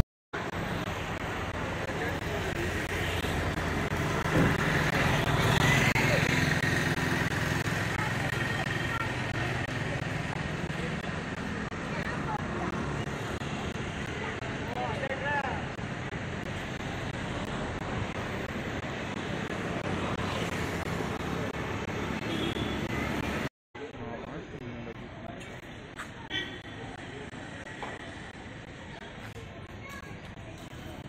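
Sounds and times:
road traffic noise: 0.0 - 31.0.

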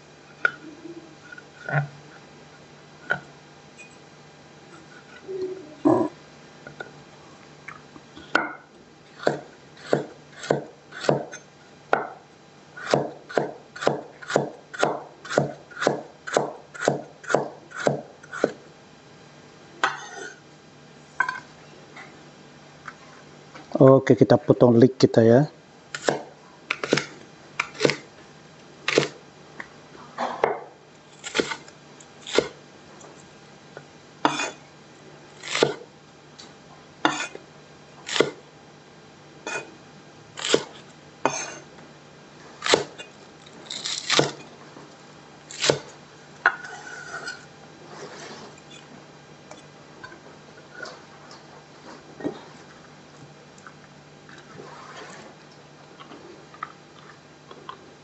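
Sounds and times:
knife chopping on wooden board: 9.2 - 12.2, 12.8 - 18.6, 26.0 - 28.1, 28.9 - 29.2, 32.3 - 32.6, 35.4 - 35.8, 38.1 - 38.4, 40.4 - 40.7, 42.6 - 43.0, 43.8 - 44.4.

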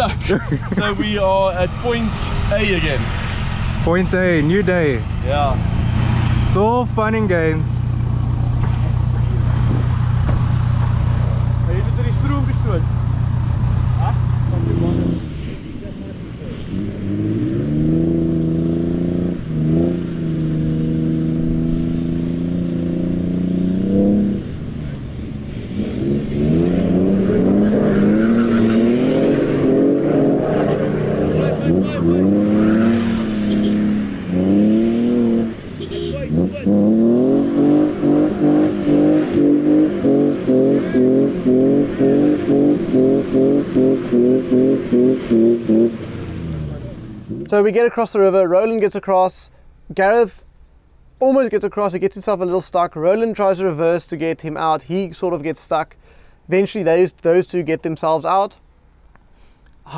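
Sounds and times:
engine revving in mud: 13.8 - 47.7.

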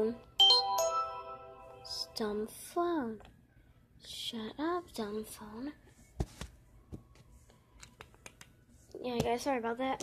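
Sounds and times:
phone alert tone: 0.4 - 2.0.

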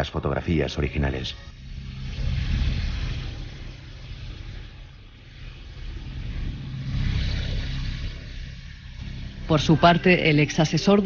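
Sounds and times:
low rumbling drone: 1.0 - 11.0
hissing wash: 1.5 - 11.0.

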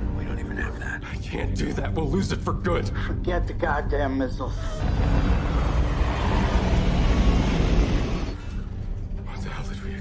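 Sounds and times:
science fiction soundtrack music: 0.0 - 10.0.

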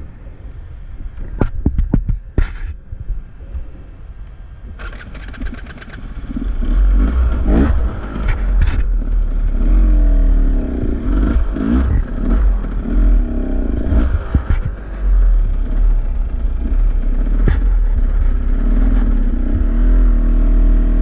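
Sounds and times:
dirt bike engine revving: 4.8 - 21.0.

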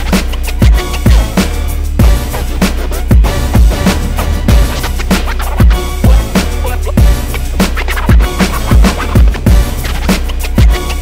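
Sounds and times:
hip hop beat with strings: 0.0 - 11.0.

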